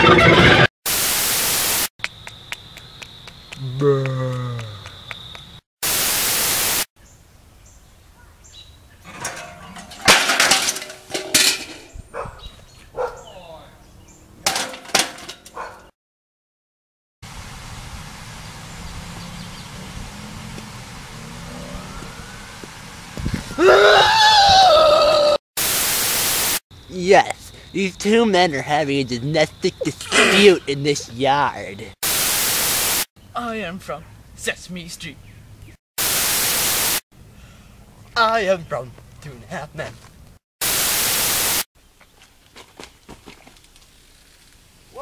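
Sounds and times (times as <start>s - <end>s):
tv static bursts: 0.0s - 1.9s, 5.8s - 6.9s, 25.6s - 26.6s, 32.0s - 33.1s, 36.0s - 37.0s, 40.6s - 41.7s
steady static hiss: 0.9s - 1.9s, 5.8s - 7.4s, 25.6s - 27.2s, 32.0s - 33.1s, 36.0s - 37.0s, 40.6s - 41.6s
loud voice: 28.1s - 31.4s.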